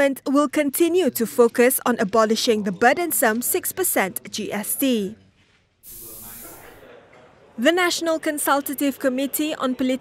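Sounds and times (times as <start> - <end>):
steady hiss: 5.8 - 6.8.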